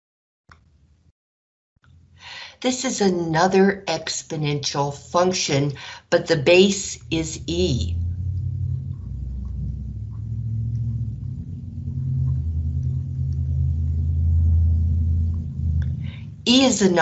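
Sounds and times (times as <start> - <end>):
low steady rumble with hum: 1.8 - 17.0.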